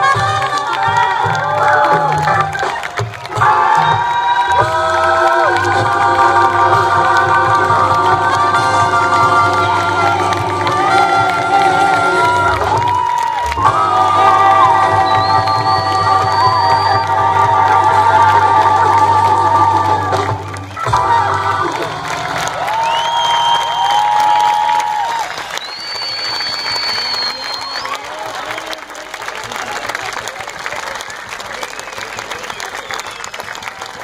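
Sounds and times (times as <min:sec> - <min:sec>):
live jazz band: 0:00.0 - 0:12.9
audience applause and cheering: 0:00.0 - 0:34.0
long whistles: 0:14.9 - 0:17.2, 0:22.7 - 0:28.0, 0:32.4 - 0:33.6.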